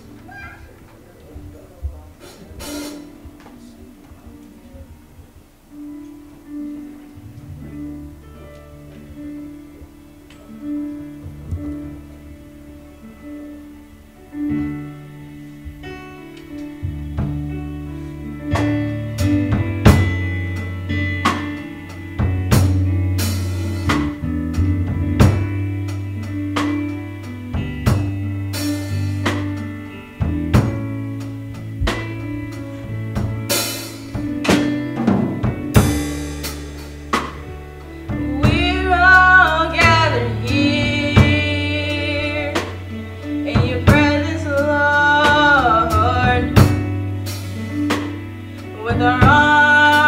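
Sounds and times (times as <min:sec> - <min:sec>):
held low chords: 0:00.0 - 0:50.0
drum kit hits: 0:02.2 - 0:03.4, 0:18.5 - 0:50.0.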